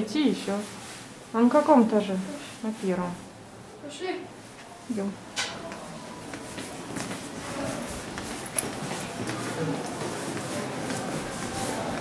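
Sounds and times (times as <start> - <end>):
footsteps walking indoors: 0.0 - 3.5, 4.2 - 12.0
indistinct voices: 3.8 - 12.0.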